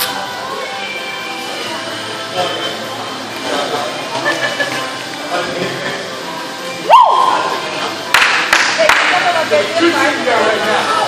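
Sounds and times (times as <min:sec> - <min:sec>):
background music: 0:00.0 - 0:11.0
voices in a gym hall: 0:00.0 - 0:11.0.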